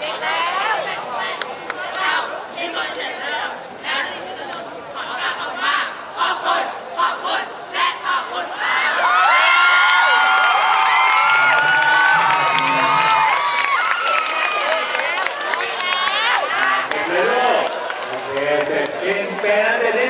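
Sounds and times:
children cheering and screaming: 0:08.8 - 0:14.8.

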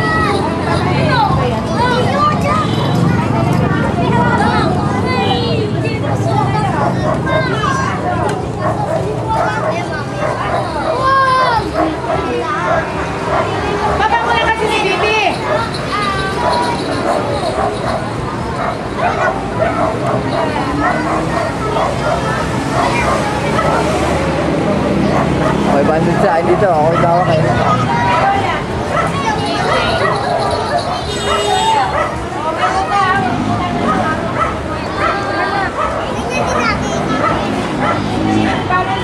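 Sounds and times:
young children chattering: 0:00.0 - 0:39.0.

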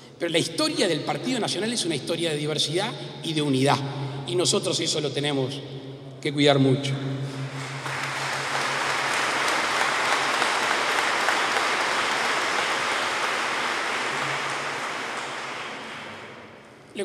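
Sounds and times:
audience applauding: 0:07.5 - 0:16.6.

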